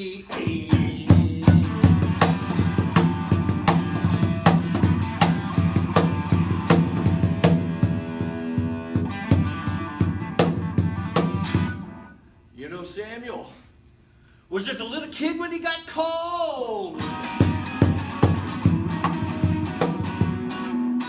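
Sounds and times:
electric guitar blues groove: 0.3 - 12.1, 16.9 - 21.0
cajon slapped in a steady beat: 0.5 - 11.8, 17.0 - 21.0.

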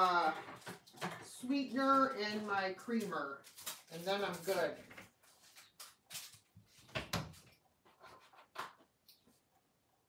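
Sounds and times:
kitchen items knocking and clinking: 0.0 - 5.2.

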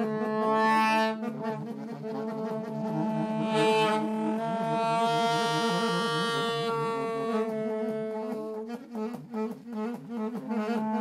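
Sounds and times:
saxophones playing together: 0.0 - 11.0.

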